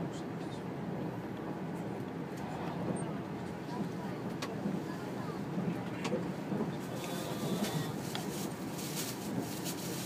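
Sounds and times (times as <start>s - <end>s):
train wheels rumbling on rail: 0.0s - 10.0s.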